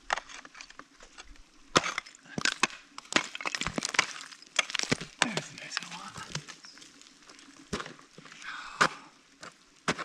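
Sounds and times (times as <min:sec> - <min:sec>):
ice tools striking ice: 0:01.7 - 0:06.6.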